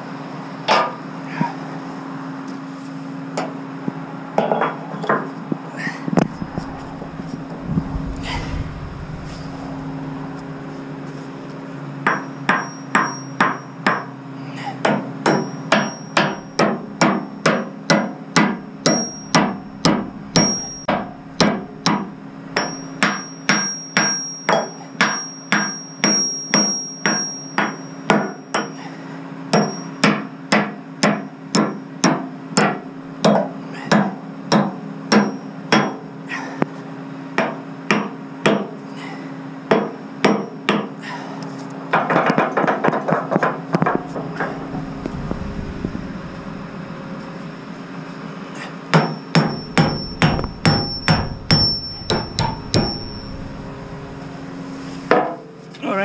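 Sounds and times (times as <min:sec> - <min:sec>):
low hum: 0:06.1 - 0:12.1, 0:18.8 - 0:23.0, 0:43.8 - 0:48.6, 0:49.3 - 0:55.1
hammer striking steel pin: 0:12.0 - 0:14.1, 0:14.9 - 0:28.8, 0:29.5 - 0:36.0, 0:48.9 - 0:53.5.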